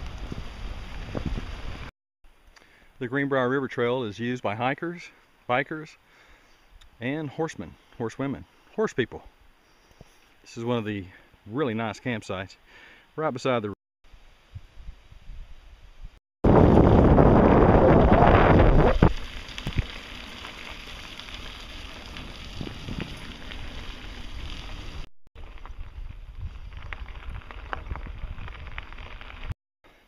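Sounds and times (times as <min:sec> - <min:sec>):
wind buffeting microphone: 0:00.0 - 0:01.9, 0:16.5 - 0:19.9, 0:22.0 - 0:23.8
bicycle ticks and rattles: 0:19.2 - 0:29.5.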